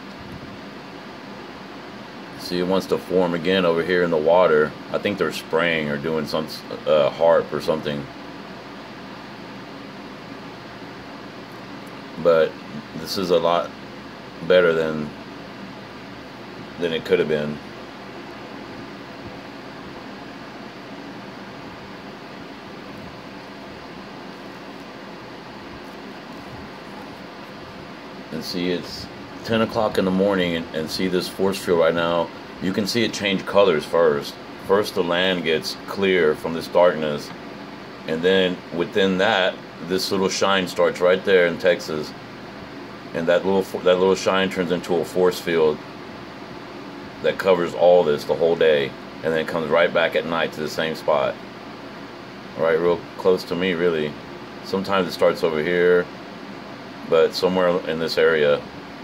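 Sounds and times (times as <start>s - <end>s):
faint low hum: 0.0s - 59.0s
room noise hiss: 0.0s - 59.0s.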